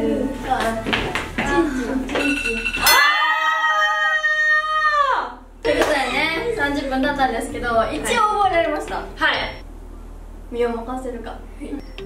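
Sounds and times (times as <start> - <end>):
young voices shouting: 2.8 - 5.4.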